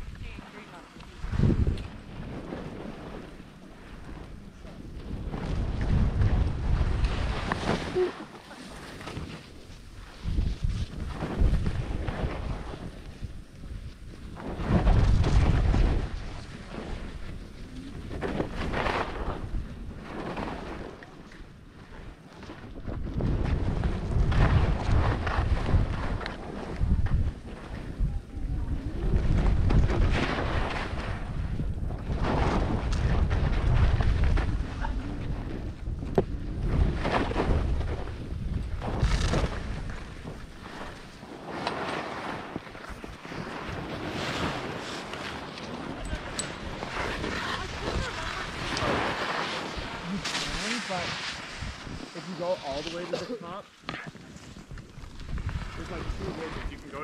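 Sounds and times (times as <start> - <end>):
wind buffeting microphone: 0.0 - 57.0
skis carving through snow: 0.2 - 28.2, 28.8 - 57.0.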